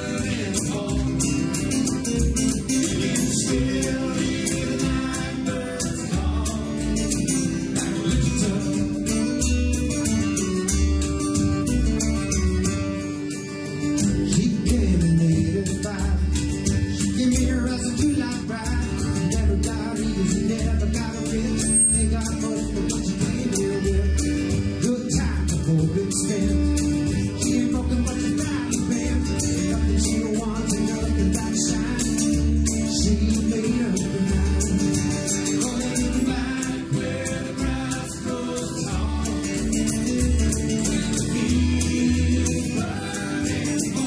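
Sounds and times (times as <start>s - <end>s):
man singing: 0.0s - 9.4s, 14.2s - 44.0s
frame drum beat: 0.0s - 13.0s, 22.1s - 44.0s
acoustic guitar strumming: 0.0s - 44.0s.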